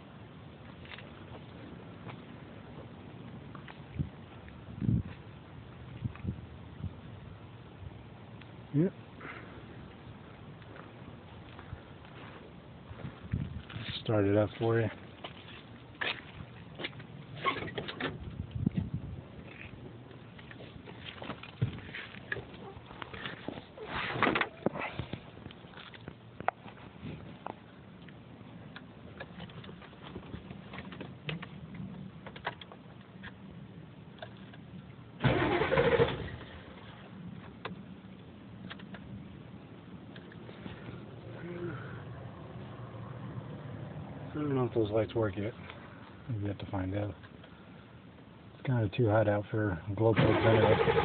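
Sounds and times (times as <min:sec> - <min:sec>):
diesel engine starting and idling: 0:35.2 - 0:36.8, 0:50.0 - 0:51.0.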